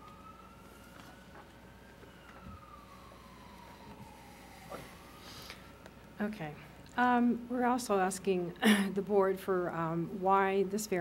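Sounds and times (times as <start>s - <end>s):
faint siren wailing: 0.0s - 6.8s
low room hum: 0.0s - 11.0s.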